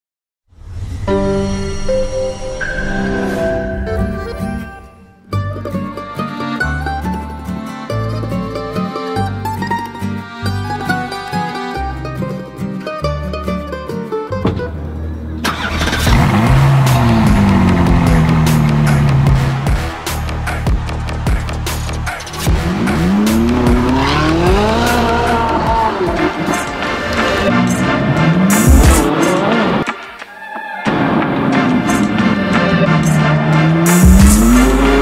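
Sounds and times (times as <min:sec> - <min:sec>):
loud car engine rushing: 0:15.4 - 0:29.9, 0:30.9 - 0:35.0
music with pulsing beat: 0:16.9 - 0:29.6, 0:31.5 - 0:35.0.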